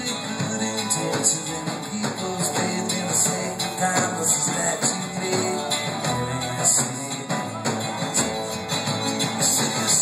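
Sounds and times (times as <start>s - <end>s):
bouzouki: 0.0s - 10.0s
live rock band playing: 0.0s - 10.0s.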